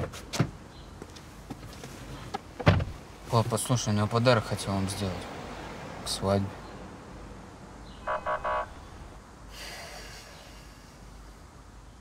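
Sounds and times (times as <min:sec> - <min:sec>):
low steady background noise: 0:00.0 - 0:12.0
short beeps: 0:08.1 - 0:08.8.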